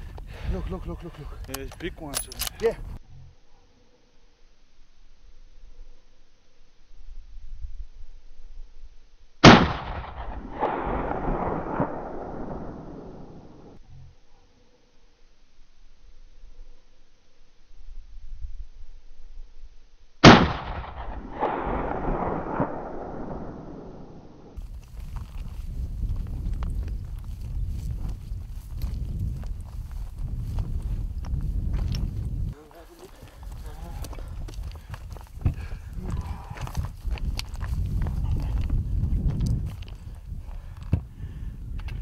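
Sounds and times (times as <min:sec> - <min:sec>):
wind on microphone: 0:00.0 - 0:03.0, 0:24.6 - 0:42.0
rifle shot echoing: 0:09.4 - 0:13.8, 0:20.2 - 0:24.6.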